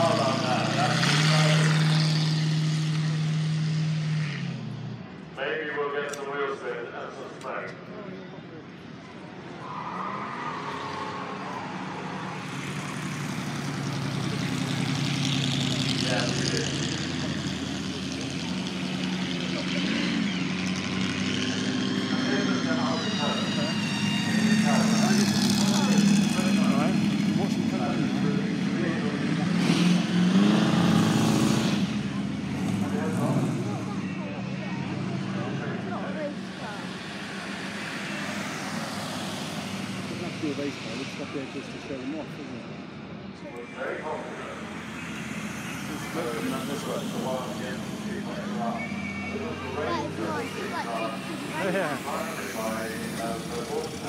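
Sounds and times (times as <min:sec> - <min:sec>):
car engine passing by: 0:00.0 - 0:04.8, 0:09.4 - 0:42.5, 0:43.6 - 0:54.0
supercharger whine: 0:00.0 - 0:54.0.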